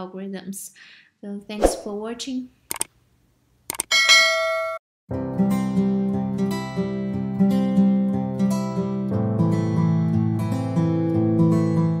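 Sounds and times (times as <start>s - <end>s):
quick clicks: 2.7s - 2.9s, 3.7s - 3.9s.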